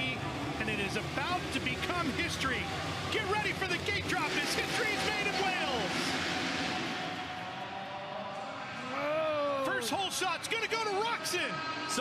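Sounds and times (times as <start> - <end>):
motorcycles accelerating: 0.0 - 9.4.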